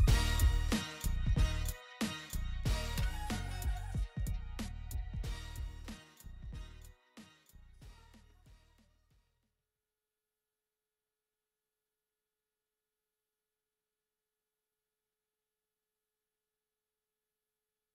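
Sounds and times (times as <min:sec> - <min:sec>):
music: 0:00.0 - 0:09.5.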